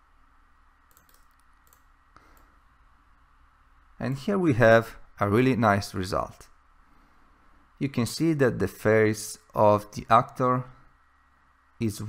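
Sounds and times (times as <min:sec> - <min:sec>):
faint computer clicks: 0:00.9 - 0:02.6.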